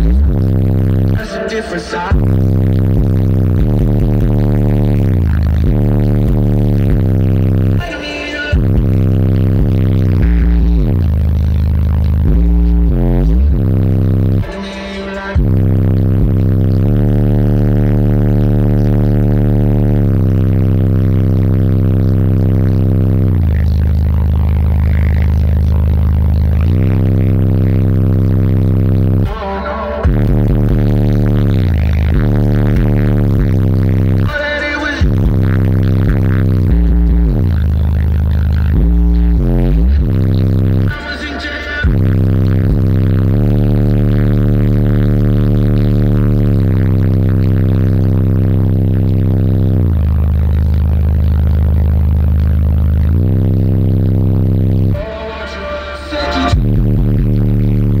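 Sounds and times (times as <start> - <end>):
bass-heavy music from subwoofer: 0.0 - 58.0.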